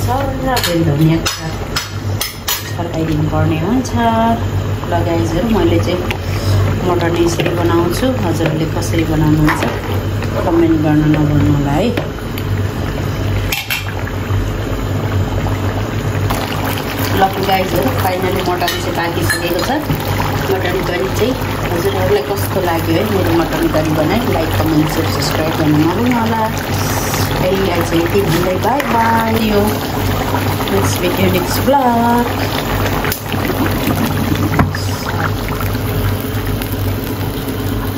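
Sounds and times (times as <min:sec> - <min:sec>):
gas stove burner roaring: 0:00.0 - 0:37.9
steady low hum: 0:00.0 - 0:37.9
curry bubbling in a pan: 0:04.6 - 0:37.9.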